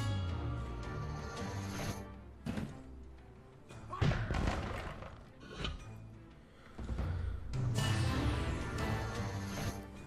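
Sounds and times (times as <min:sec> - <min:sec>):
slot game music: 0:07.7 - 0:10.0.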